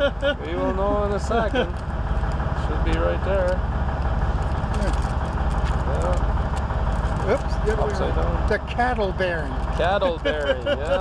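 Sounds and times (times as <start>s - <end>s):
man's voice murmuring: 0.0s - 1.8s, 7.3s - 11.0s
diesel truck engine idling: 0.0s - 11.0s.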